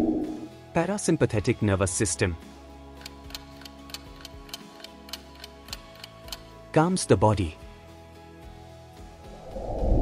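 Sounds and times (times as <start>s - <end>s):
soft background music: 0.0s - 10.0s
clock ticks: 3.0s - 6.5s.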